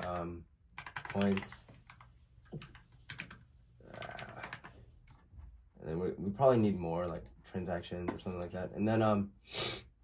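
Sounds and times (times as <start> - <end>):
computer keyboard typing: 0.0 - 5.2, 7.0 - 7.4, 8.1 - 8.6.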